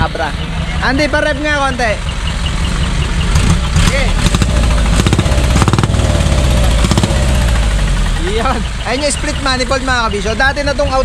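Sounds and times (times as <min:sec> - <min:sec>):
truck engine exhaust rumble: 0:00.0 - 0:11.0.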